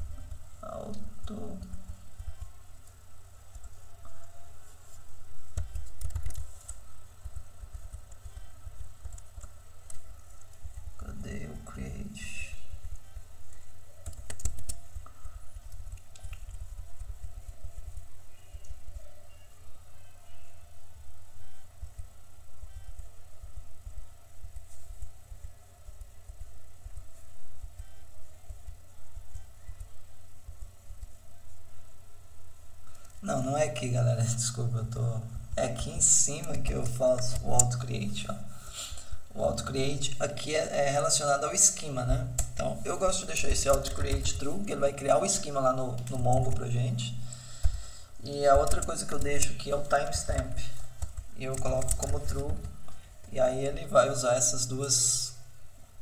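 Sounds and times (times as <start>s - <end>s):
computer keyboard keystrokes: 5.5s - 10.9s, 12.8s - 18.8s, 41.6s - 46.7s, 48.5s - 53.5s.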